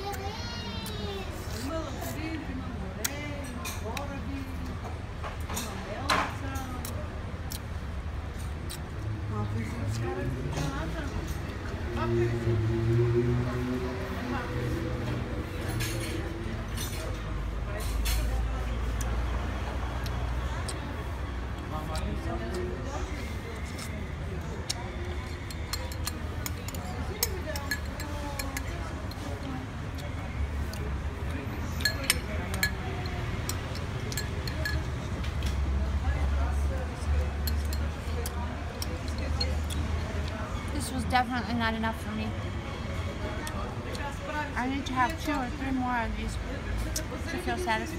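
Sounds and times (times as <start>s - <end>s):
vehicle engine rumble passing: 8.5s - 40.9s
spoon clinking in ceramic bowl: 31.8s - 33.2s.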